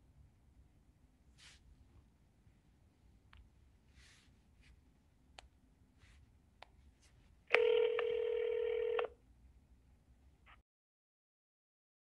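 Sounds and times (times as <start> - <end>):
steady telephone tone: 7.5 - 9.2.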